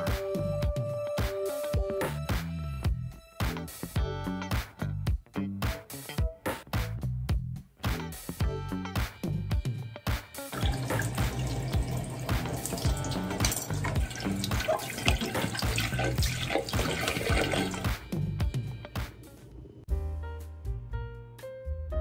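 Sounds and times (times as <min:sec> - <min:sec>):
background music: 0:00.0 - 0:22.0
tap water running into sink: 0:10.5 - 0:18.0
water splashing on plastic: 0:10.6 - 0:18.0.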